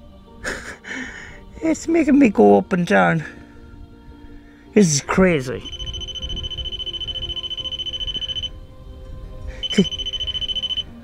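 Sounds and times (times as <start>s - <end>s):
proximity alarm high electronic tone: 5.6s - 8.5s, 9.6s - 10.9s.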